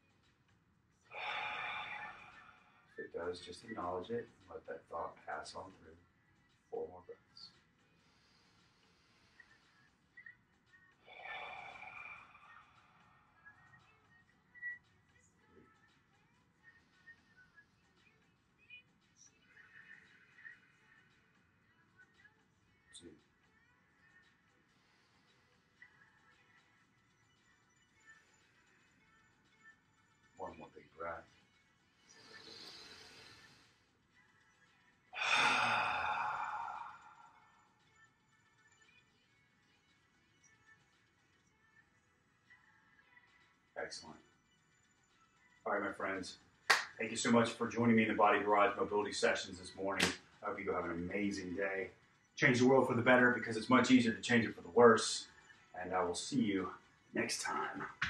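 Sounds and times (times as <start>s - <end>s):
deep breath out: 1.1s - 3.0s, 11.1s - 12.9s, 32.1s - 33.8s, 35.2s - 37.5s
man exhaling through mouth: 35.2s - 37.2s.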